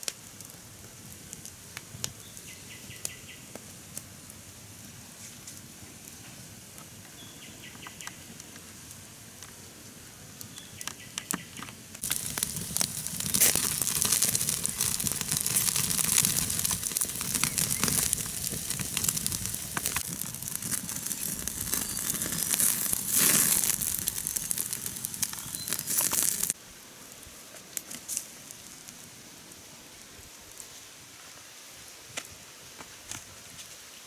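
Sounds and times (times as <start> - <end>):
meat sizzling over coals: 0.0 - 33.7
campfire crackling: 0.0 - 34.0.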